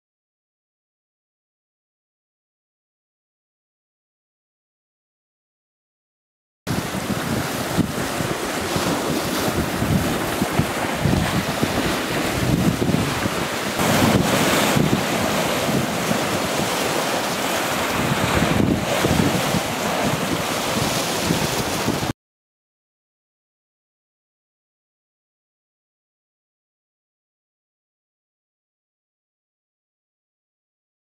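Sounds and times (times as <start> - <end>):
waves breaking on rocky shore: 6.7 - 22.1
wind buffeting microphone: 6.7 - 22.1.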